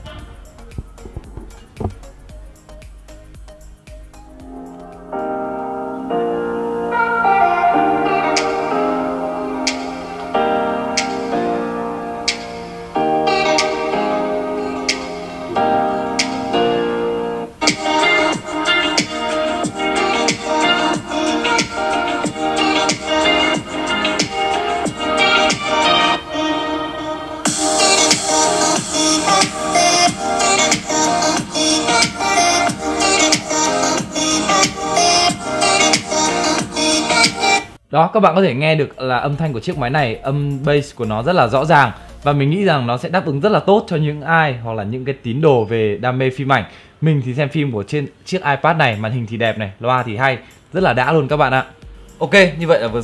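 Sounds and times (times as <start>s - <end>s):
kick drum: 0.0s - 4.5s, 51.3s - 52.1s
music with a beat from speakers: 0.0s - 37.8s, 51.8s - 52.2s.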